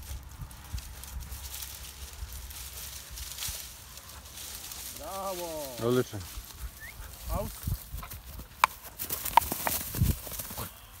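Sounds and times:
footsteps through dry grass: 0.0s - 11.0s.

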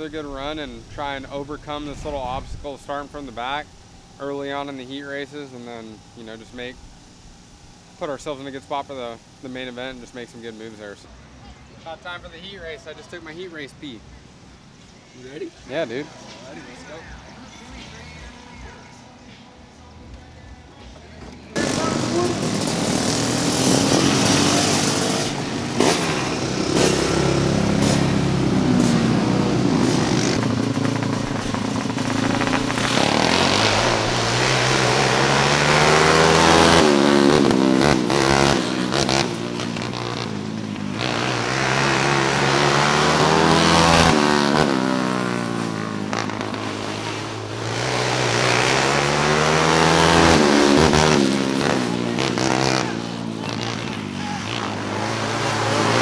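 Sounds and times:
kart engines revving: 0.0s - 19.2s, 21.0s - 56.0s.

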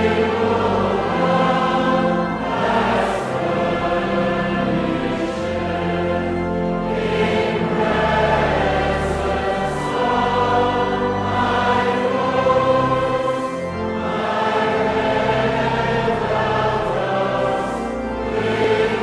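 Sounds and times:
choir singing a gospel hymn: 0.0s - 19.0s.

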